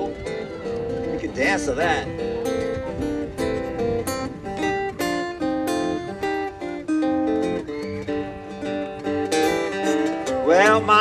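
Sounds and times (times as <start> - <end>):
acoustic guitars playing blues: 0.0 - 11.0.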